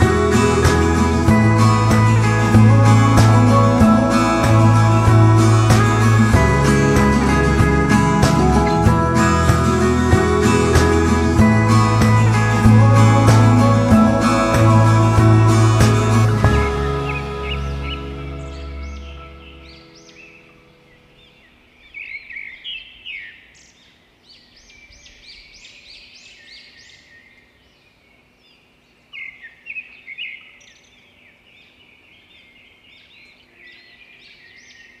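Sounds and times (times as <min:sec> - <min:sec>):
background music: 0:00.0 - 0:20.9
songbirds chirping: 0:00.0 - 0:35.0.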